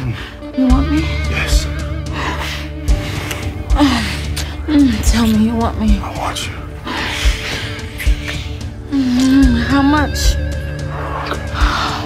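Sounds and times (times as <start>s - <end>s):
music with slow bass beat: 0.0s - 12.0s.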